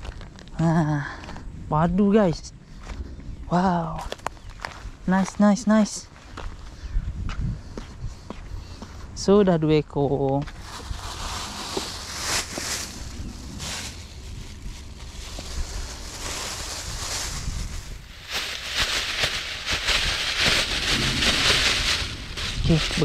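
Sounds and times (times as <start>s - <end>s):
wind rumble on microphone: 0.0s - 23.0s
plastic bag rustling: 10.5s - 23.0s.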